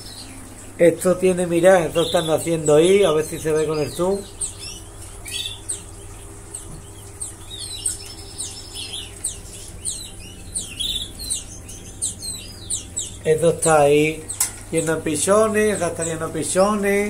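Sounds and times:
canaries chirping: 0.0s - 17.0s
low steady hum: 0.0s - 17.0s.

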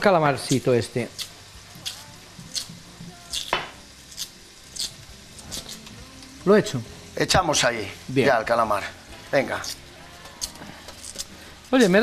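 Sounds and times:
squid sizzling in a frying pan: 0.0s - 12.0s.

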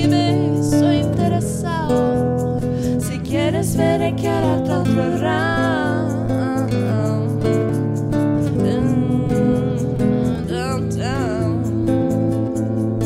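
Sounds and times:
shaker rhythm: 0.0s - 13.0s
strummed acoustic guitar: 0.0s - 13.0s
women singing: 0.0s - 13.0s.

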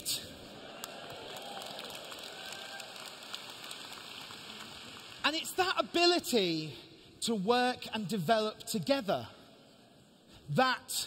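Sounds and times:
audience applauding: 0.7s - 5.2s.

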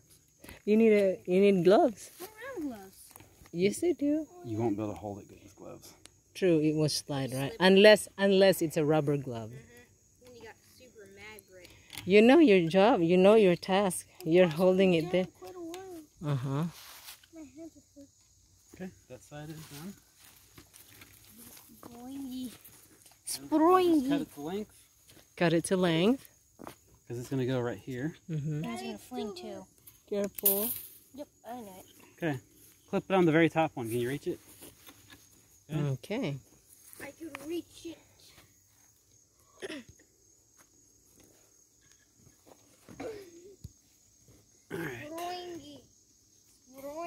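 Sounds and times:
high-pitched insect trill: 0.0s - 47.0s.

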